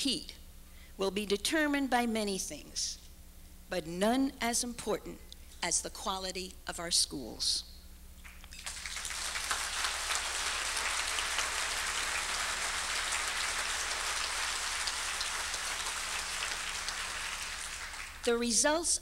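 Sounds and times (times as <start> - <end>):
audience applauding: 8.3 - 18.3.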